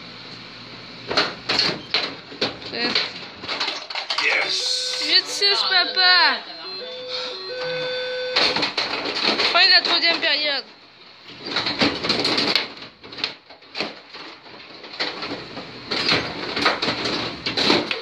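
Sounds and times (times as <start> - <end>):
person making excited calls: 4.2 - 5.3.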